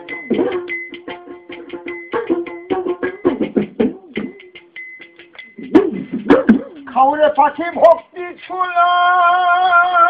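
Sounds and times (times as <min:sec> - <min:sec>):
hand percussion strokes: 0:00.0 - 0:08.6.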